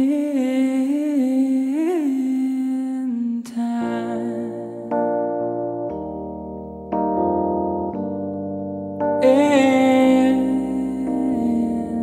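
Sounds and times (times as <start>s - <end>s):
piano chord: 3.9s - 12.0s.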